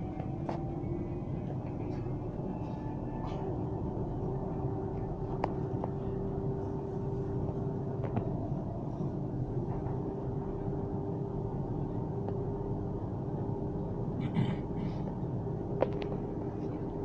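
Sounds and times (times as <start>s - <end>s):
vehicle rumble and hum from inside: 0.0s - 17.0s.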